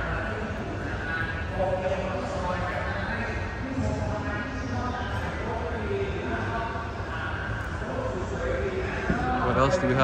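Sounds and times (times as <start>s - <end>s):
crowd voices talking: 0.0s - 10.0s.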